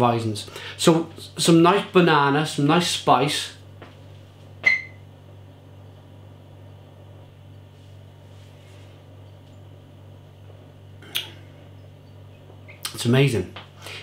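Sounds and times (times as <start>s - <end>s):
low hum: 0.0s - 12.9s.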